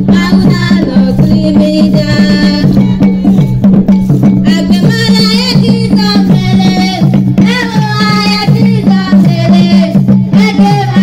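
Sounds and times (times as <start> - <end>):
drums and bell playing rhythm: 0.0 - 11.0
people singing: 0.1 - 3.4, 4.4 - 11.0.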